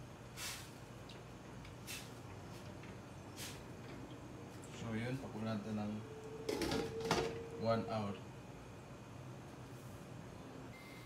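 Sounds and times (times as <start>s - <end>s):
metal ringing tone: 5.6s - 8.3s.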